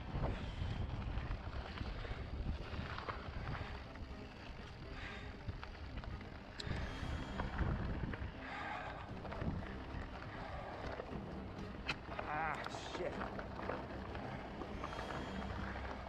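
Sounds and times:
wind buffeting microphone: 0.0 - 12.1
bike clicks and rattles: 0.0 - 16.0
bike tyres crunching on dirt: 0.0 - 16.0.

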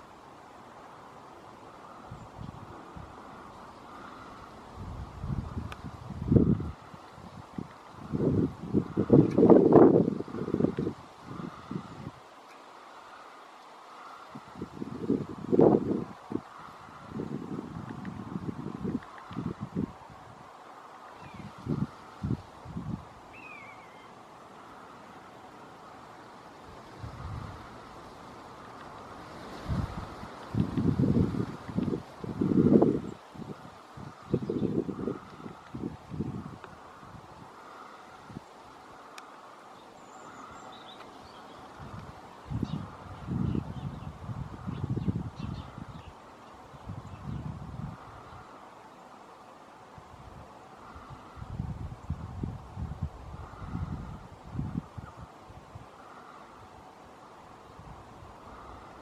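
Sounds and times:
wind buffeting microphone: 1.9 - 12.3, 14.3 - 20.6, 21.2 - 23.8, 26.6 - 38.8, 40.0 - 48.5, 50.0 - 56.8
faint bird chirps: 23.3 - 25.1.

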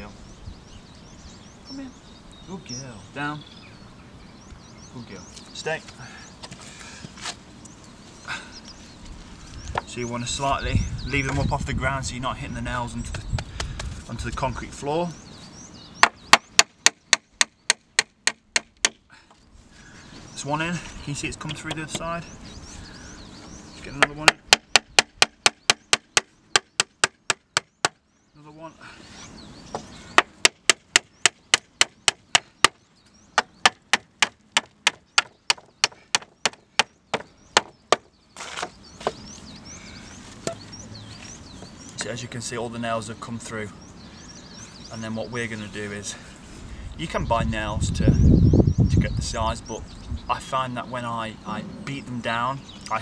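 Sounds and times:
hammer striking nail into wood: 16.0 - 19.0, 24.0 - 28.0, 30.2 - 32.8, 33.4 - 38.1.

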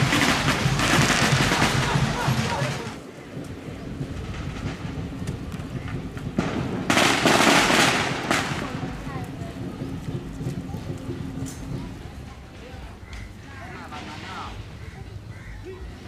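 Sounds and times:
firecrackers popping: 0.0 - 11.9
voices of a procession: 0.0 - 16.0.

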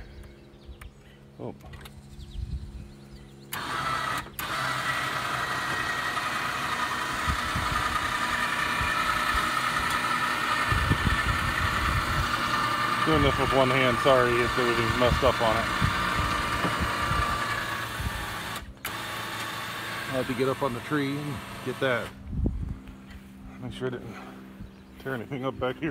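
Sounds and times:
atv engine running: 0.0 - 25.9
low steady hum: 0.0 - 25.9.

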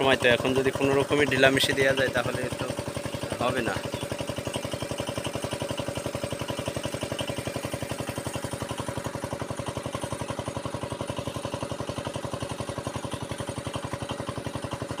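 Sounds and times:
pump engine running: 0.0 - 15.0.

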